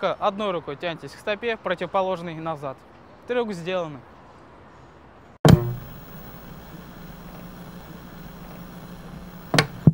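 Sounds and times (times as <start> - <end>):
loud hit with ringing tone: 5.5 - 5.9
steady low hum: 5.5 - 9.9.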